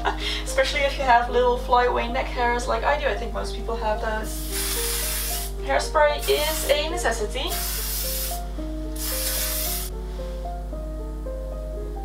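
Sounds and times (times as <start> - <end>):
background music: 0.0 - 12.0
aerosol spray hissing: 4.2 - 5.6, 6.2 - 10.0.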